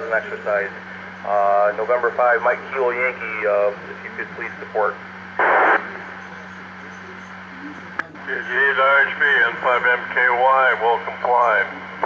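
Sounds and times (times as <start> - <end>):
steady low hum: 0.0 - 12.0
radio squelch tail: 0.1 - 12.0
scanner static burst: 0.7 - 6.8.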